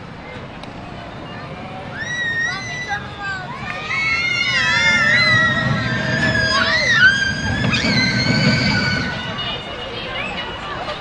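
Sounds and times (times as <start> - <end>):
roller coaster rumble: 0.3 - 11.0
high-pitched wheel squeal: 3.6 - 11.0.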